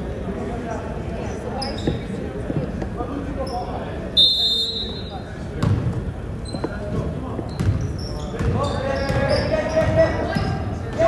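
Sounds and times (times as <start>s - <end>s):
voices in a gym: 0.0s - 11.0s.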